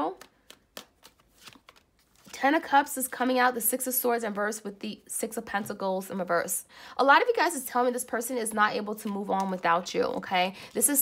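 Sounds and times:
cards shuffling: 0.0 - 2.4, 8.9 - 11.0.

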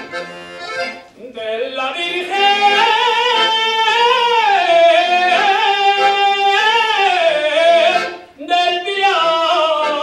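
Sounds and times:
man singing long held notes: 1.2 - 10.0.

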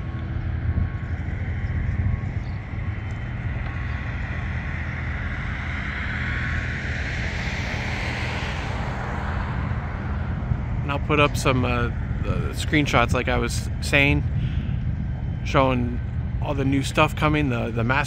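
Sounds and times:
vehicle passing: 0.0 - 15.4
steady low rumble: 0.0 - 18.0.

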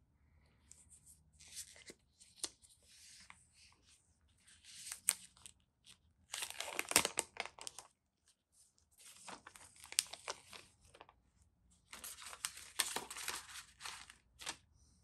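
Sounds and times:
plastic wrap crinkling: 4.8 - 7.9, 9.1 - 11.1, 11.9 - 14.6.

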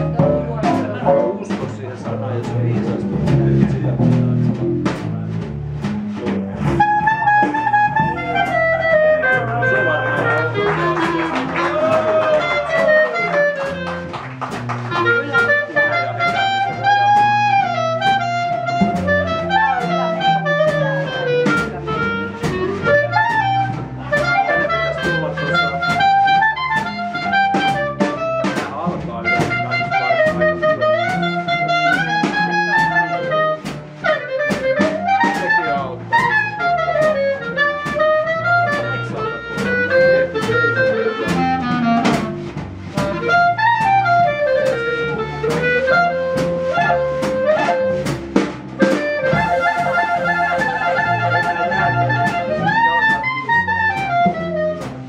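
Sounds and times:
clarinet melody: 0.0 - 1.6, 6.2 - 55.0
drum kit with cymbals: 0.0 - 55.0
upright bass: 0.0 - 55.0.

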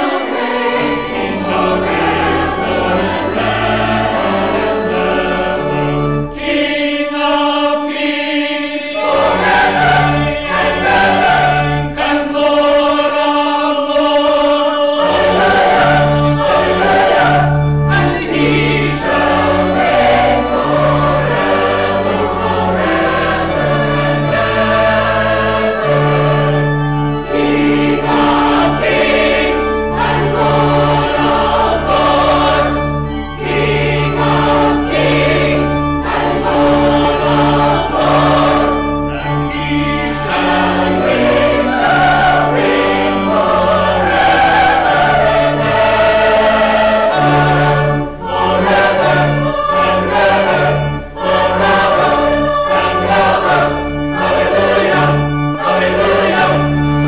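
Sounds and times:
voices singing a hymn: 0.0 - 57.0
held low accompaniment notes: 15.0 - 57.0.

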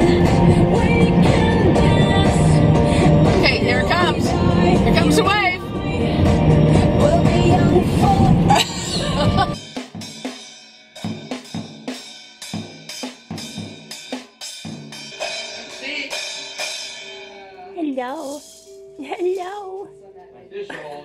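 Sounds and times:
loud music with voices: 0.0 - 10.4, 11.0 - 18.9
drum hits: 9.6 - 18.8
ringing cymbal: 9.6 - 19.8.

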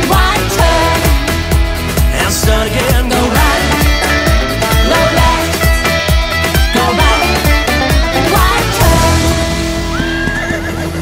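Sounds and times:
country-pop dance music: 0.0 - 10.5
horse whinnying: 9.9 - 11.0.

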